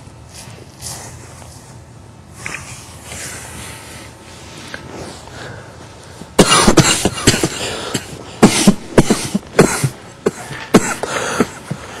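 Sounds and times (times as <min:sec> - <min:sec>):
person coughing hard: 0:06.4 - 0:12.0.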